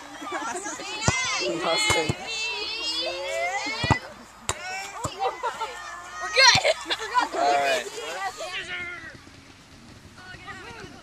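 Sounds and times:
child shouting: 4.9 - 7.4.

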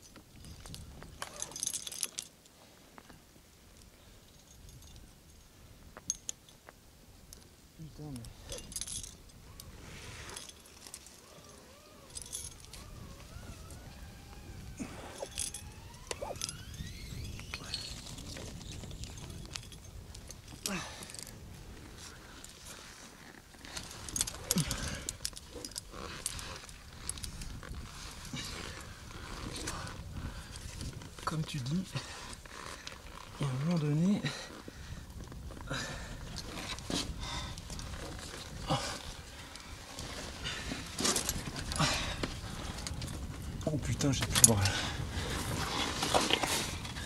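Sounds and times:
climbing hardware clinking: 0.0 - 2.4, 8.0 - 34.7, 35.7 - 47.0
faint wavering tone: 11.2 - 19.5.

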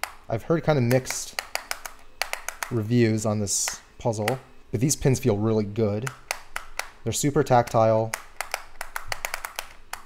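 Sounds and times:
sharp puzzle pin clicks: 0.0 - 2.9, 6.0 - 10.0.

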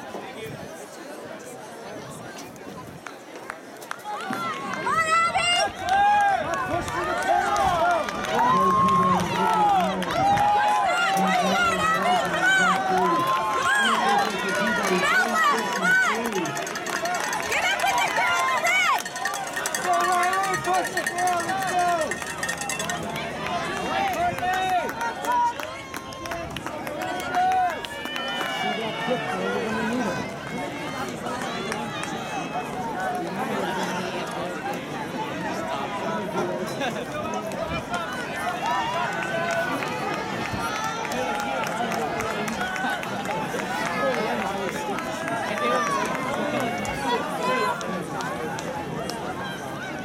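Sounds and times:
spectators shouting and cheering: 0.0 - 50.0.

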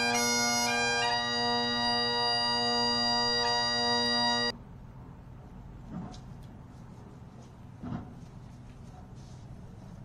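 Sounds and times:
bagpipes holding a chord: 0.0 - 4.5
faint background noise: 0.0 - 10.0.

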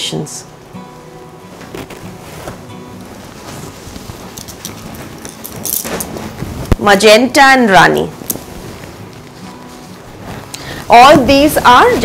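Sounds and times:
woman's voice: 0.0 - 0.5, 6.8 - 8.2, 10.9 - 12.0
silk fabric rustling: 0.5 - 12.0.

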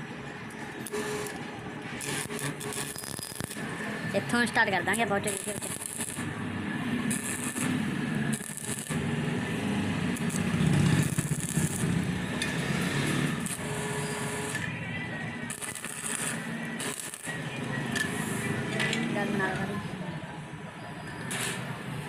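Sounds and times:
welding arc crackling and hissing: 0.8 - 14.6, 15.4 - 18.8, 21.2 - 22.0
low welding buzz: 0.8 - 14.7, 15.4 - 18.8, 21.2 - 22.0.

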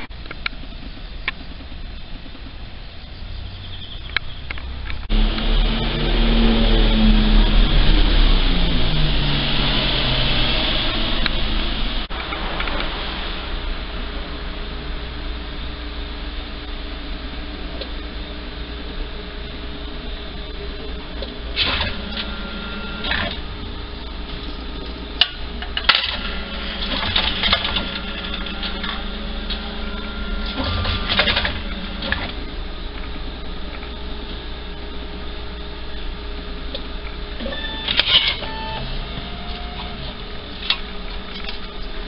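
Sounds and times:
steady machine hum: 0.0 - 42.0
machine clicking and whirring: 19.6 - 35.1, 36.0 - 42.0.

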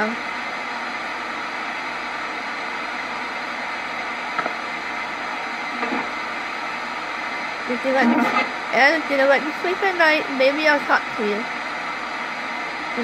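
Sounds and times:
radio static hiss: 0.9 - 13.0
faint snatches of radio sound: 8.0 - 8.6.

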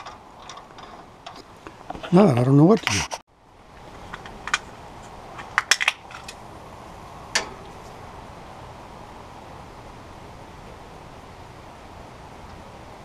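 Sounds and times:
faint background noise: 0.0 - 13.0.

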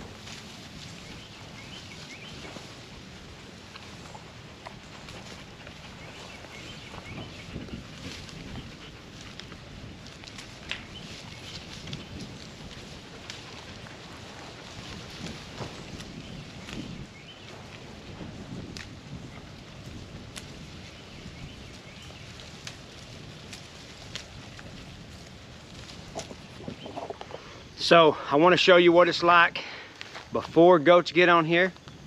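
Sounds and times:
leaves rustling: 0.0 - 32.0
twigs snapping: 7.6 - 17.9, 18.5 - 20.7, 21.6 - 27.4.

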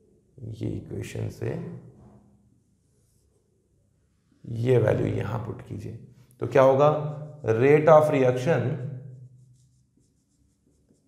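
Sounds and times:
marker pen writing on whiteboard: 9.0 - 11.0.

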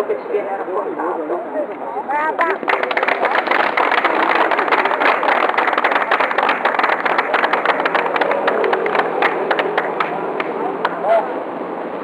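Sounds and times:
crowd applauding: 2.4 - 11.0.

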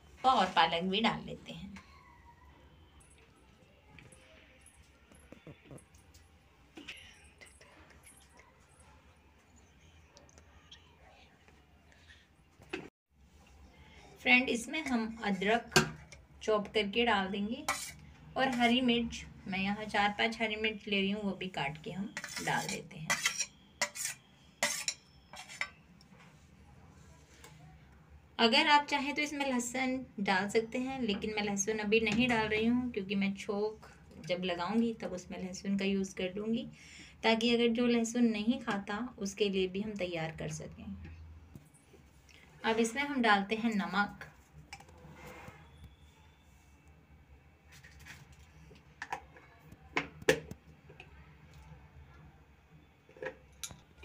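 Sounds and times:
steel utensils clinking: 22.2 - 25.8.

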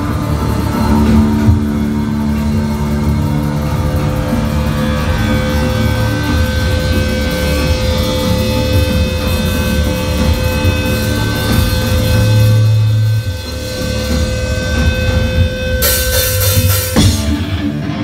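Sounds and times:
distorted guitars droning chord: 0.0 - 18.0.

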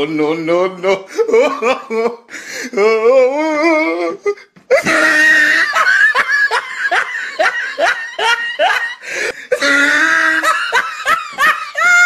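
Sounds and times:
person laughing in pitched cries: 1.1 - 12.0.

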